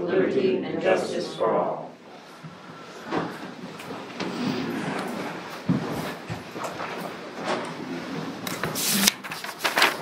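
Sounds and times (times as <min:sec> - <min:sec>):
feet shuffling: 0:02.1 - 0:08.8
chairs scraping: 0:02.2 - 0:10.0.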